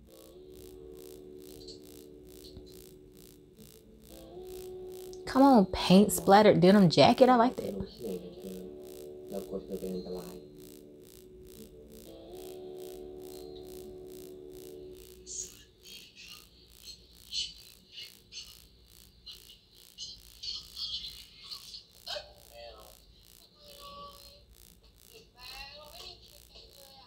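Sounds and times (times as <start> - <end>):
held synth chord: 0.0 - 15.8
quiet dialogue: 5.2 - 10.5.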